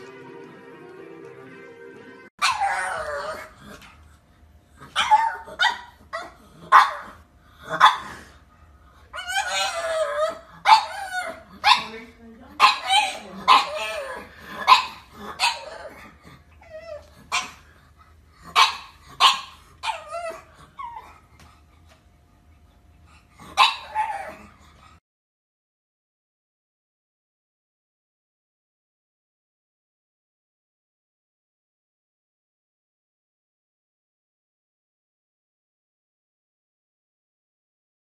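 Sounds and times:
music: 0.0s - 2.3s
dog barking: 2.4s - 3.3s, 5.0s - 8.1s, 10.6s - 12.0s, 12.6s - 15.8s, 18.5s - 20.0s, 23.6s - 24.2s.

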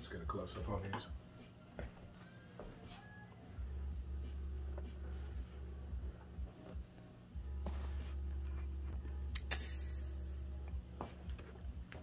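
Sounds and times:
sharp click: 9.3s - 10.1s.

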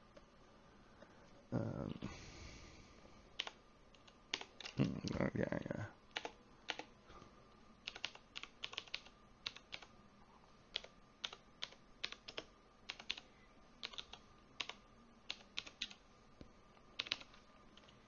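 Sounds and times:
typing on computer keyboard: 3.4s - 4.8s, 6.1s - 6.9s, 7.8s - 9.9s, 10.7s - 13.2s, 13.8s - 16.0s, 17.0s - 18.0s.

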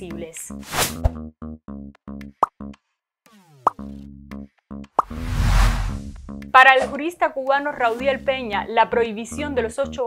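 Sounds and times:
sharp pop sound effects: 3.5s - 3.9s, 5.0s - 5.2s
quick falling glide: 5.1s - 6.1s.

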